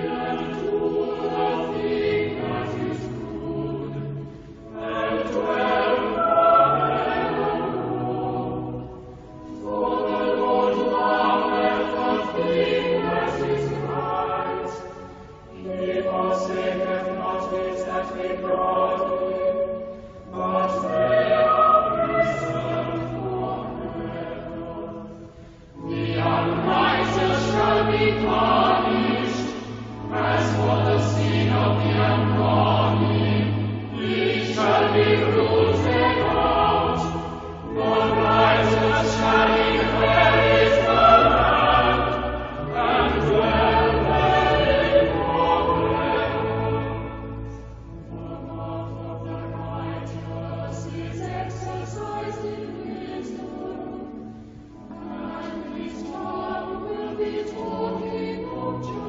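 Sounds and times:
choir singing sacred music: 0.0 - 59.0.

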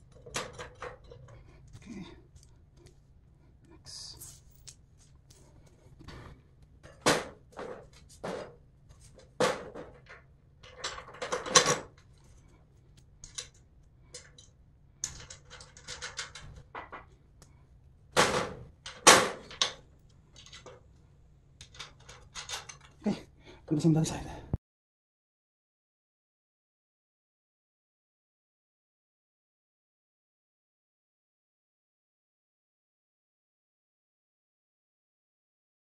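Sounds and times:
bolts clinking against metal frame: 0.0 - 1.4, 9.2 - 12.1, 21.6 - 23.0.

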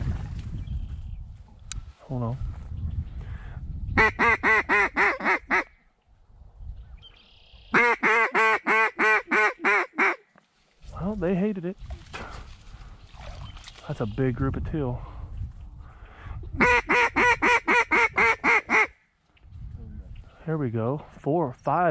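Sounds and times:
duck call quacks: 4.0 - 5.7, 7.7 - 10.2, 16.6 - 19.0.

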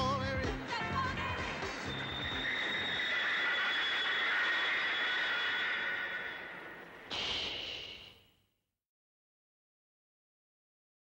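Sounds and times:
wheels squealing on rails: 1.4 - 7.8.

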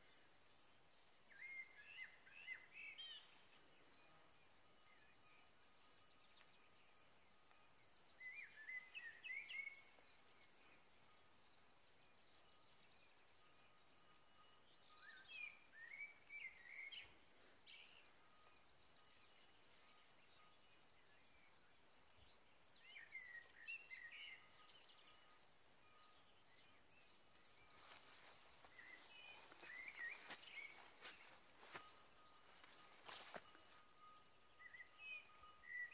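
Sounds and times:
insect chirping: 0.0 - 35.9.

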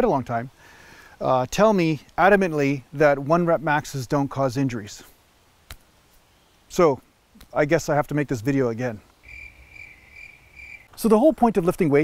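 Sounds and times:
cricket chirping: 9.1 - 10.9.

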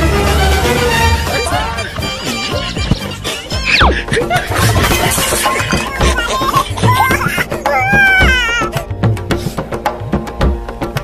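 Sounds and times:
music with percussive beat: 0.6 - 11.0.

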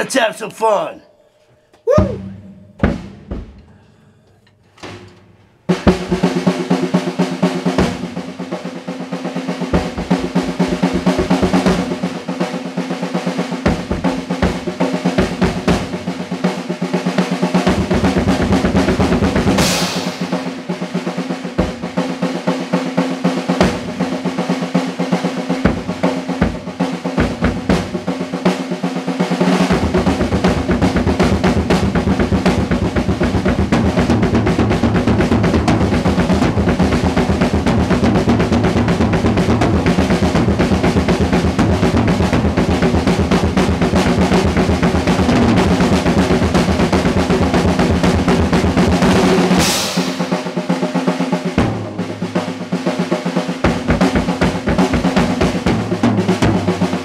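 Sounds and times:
bass drum: 1.9 - 3.8, 9.7 - 12.0, 29.7 - 50.3, 53.6 - 56.8
snare and tom rolls: 1.9 - 3.8, 4.8 - 57.0
cymbal crash: 49.5 - 50.6.

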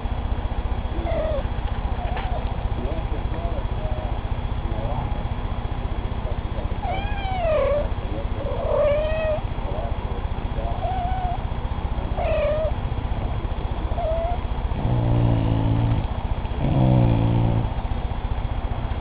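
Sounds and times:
kittens meowing: 1.0 - 2.5, 6.8 - 10.0, 10.6 - 11.5, 12.1 - 12.8, 13.9 - 16.0
dog growling low: 1.0 - 3.1, 6.8 - 10.0, 13.9 - 17.8.

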